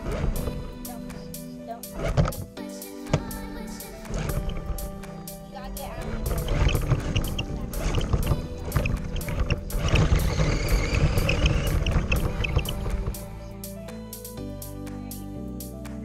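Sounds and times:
toy truck driving over gravel: 0.0 - 0.9, 4.0 - 5.0, 5.6 - 13.3
background music: 0.0 - 16.0.

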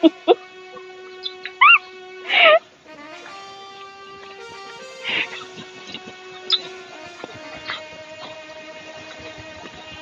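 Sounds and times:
background music with held notes: 0.0 - 10.0
high-pitched animal cries: 1.5 - 2.6.

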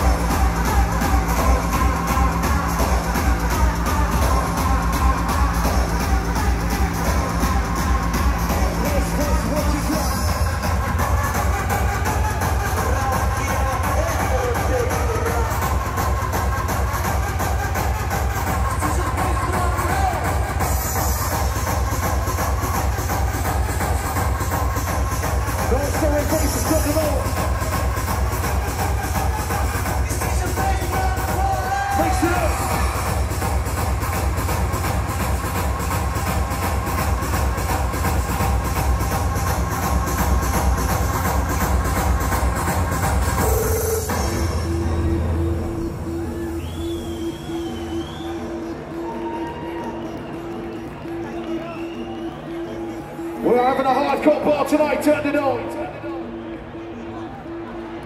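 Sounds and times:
hardcore techno with distorted kick: 0.0 - 57.8.

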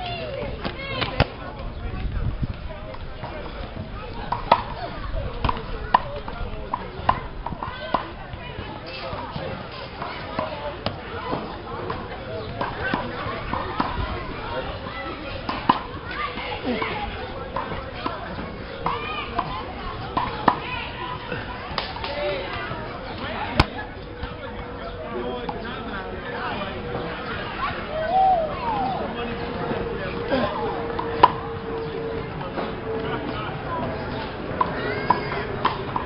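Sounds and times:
children chattering: 0.0 - 36.0.

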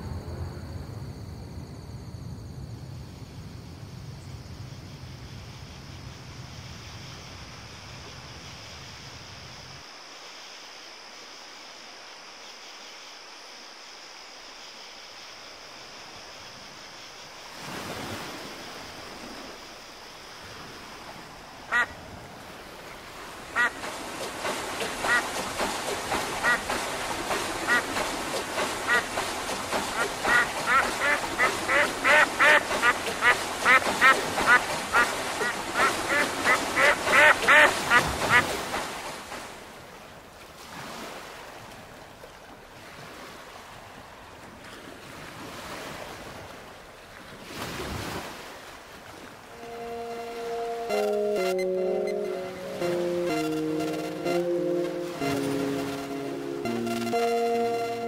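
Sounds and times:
steady hiss: 2.8 - 37.9
duck quacking: 21.7 - 21.9, 23.6 - 23.9, 24.8 - 25.4, 26.3 - 26.8, 27.6 - 28.0, 28.8 - 29.1, 30.0 - 38.5.

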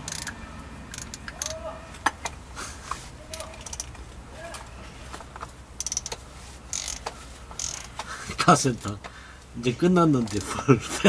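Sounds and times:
socket ratchet clicking: 0.0 - 2.3, 3.3 - 4.0, 5.8 - 8.1.

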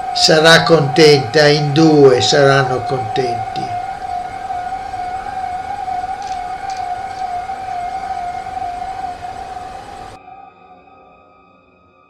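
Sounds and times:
heart monitor flatline tone: 0.0 - 10.2.

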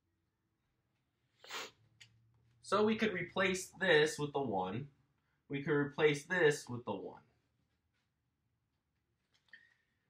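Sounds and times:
short breathy burst from person: 1.4 - 1.8.

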